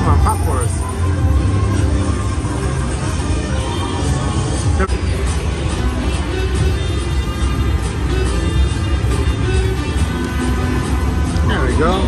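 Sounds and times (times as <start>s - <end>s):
slot machine game music: 0.0s - 3.4s.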